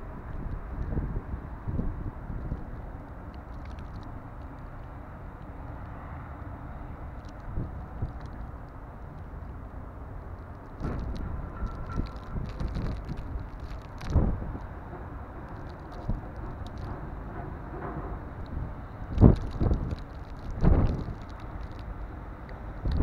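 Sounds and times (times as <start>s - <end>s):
snowstorm wind blowing: 0.0s - 23.0s.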